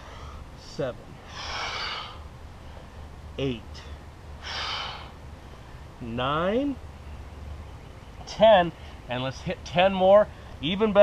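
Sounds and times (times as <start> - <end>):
man breathing heavily: 0.0 - 0.6, 1.2 - 3.2, 3.8 - 6.0.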